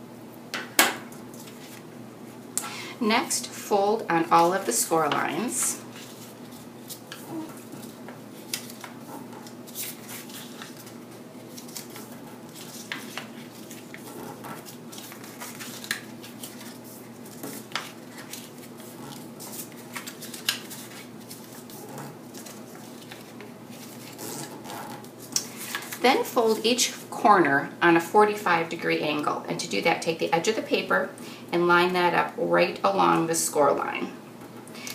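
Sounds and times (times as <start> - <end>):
stiff paper crackling and tapping: 5.1 - 26.0.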